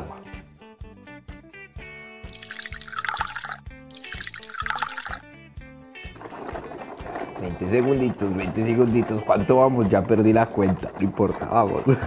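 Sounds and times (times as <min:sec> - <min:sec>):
light background music: 0:00.0 - 0:12.0
water poured into plastic bowl: 0:02.2 - 0:05.2.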